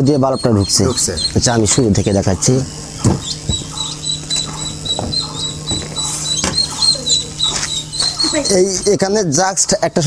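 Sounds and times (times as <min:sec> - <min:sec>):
chicks peeping: 0:00.0 - 0:10.0
steady low hum: 0:00.0 - 0:10.0
sharp knocks: 0:03.0 - 0:08.2.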